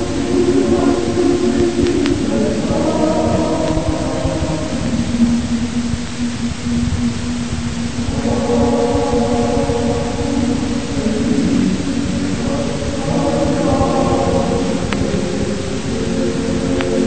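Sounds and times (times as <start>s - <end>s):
choir chanting: 0.0s - 17.0s
steady background hiss: 0.0s - 17.0s.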